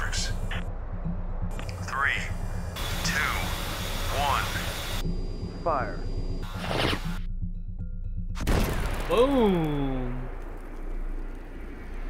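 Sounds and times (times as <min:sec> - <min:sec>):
low music drone: 0:00.0 - 0:06.5.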